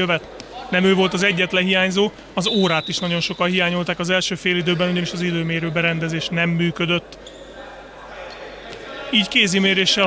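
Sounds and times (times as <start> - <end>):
sports hall ambience: 0.0 - 10.0.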